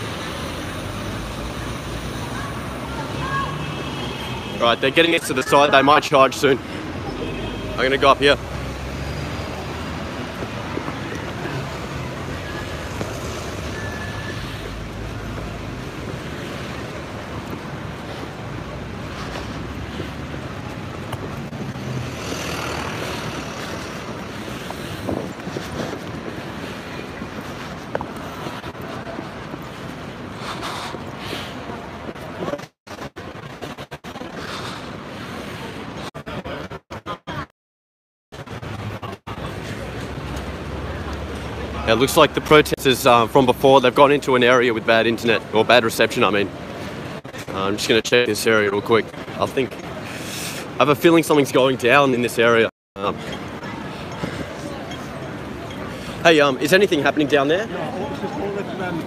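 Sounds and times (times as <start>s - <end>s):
traffic: 0.0s - 37.5s, 38.3s - 59.0s
wind on microphone: 22.8s - 31.8s.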